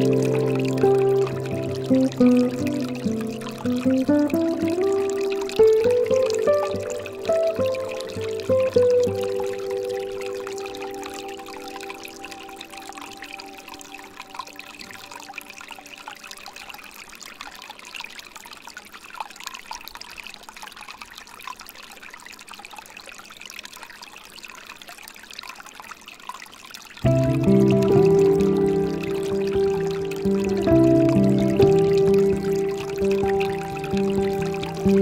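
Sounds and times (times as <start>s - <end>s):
held piano chord: 0.0s - 13.4s, 27.0s - 35.0s
water trickling into pool: 0.0s - 35.0s.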